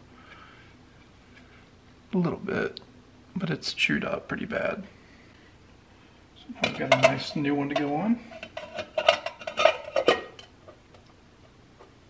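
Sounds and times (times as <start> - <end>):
metal cover plate clinking: 6.6 - 10.5.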